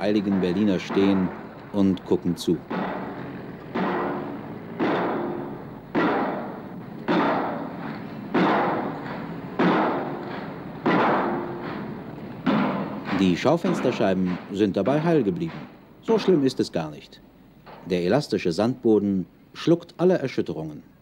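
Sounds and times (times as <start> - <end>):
pile driver striking steel pile: 0.0 - 16.6.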